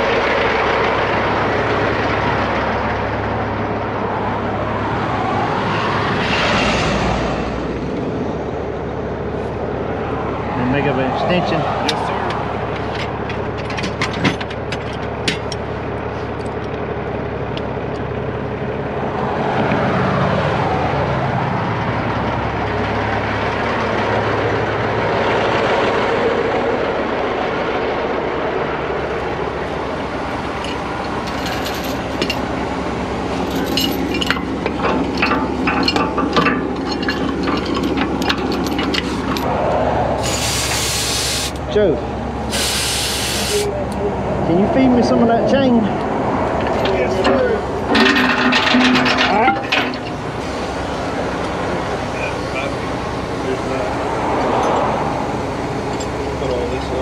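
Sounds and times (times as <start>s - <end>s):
vehicle engine idling: 0.0s - 6.0s, 7.4s - 57.0s
vehicle passing: 0.0s - 13.7s, 18.1s - 35.3s, 37.8s - 57.0s
compressed air hissing: 40.2s - 41.6s, 42.5s - 43.7s.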